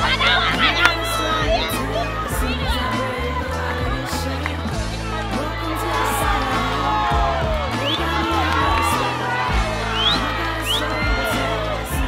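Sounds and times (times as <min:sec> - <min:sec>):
background music with heavy bass: 0:00.0 - 0:12.0
stadium crowd cheering and shouting: 0:00.0 - 0:12.0.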